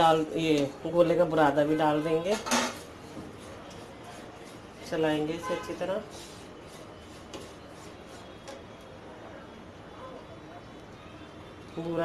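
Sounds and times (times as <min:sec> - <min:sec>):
wooden spatula scraping pan: 0:05.5 - 0:08.6.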